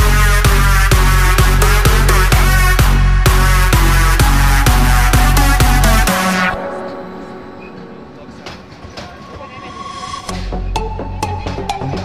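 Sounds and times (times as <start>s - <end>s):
train rolling past: 6.8s - 10.4s.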